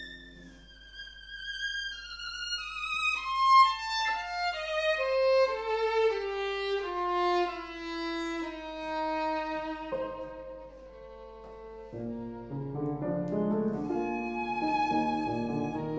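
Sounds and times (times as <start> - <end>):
violin playing slow phrase: 0.0 - 15.9
soft piano accompaniment: 3.4 - 15.9.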